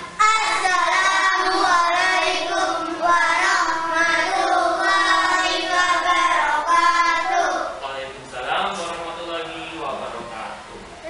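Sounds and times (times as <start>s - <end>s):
children singing: 0.2s - 7.8s.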